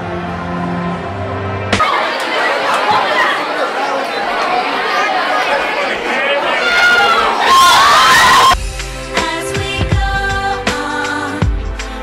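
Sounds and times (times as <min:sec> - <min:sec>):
crowd of students chattering: 0:01.6 - 0:08.5.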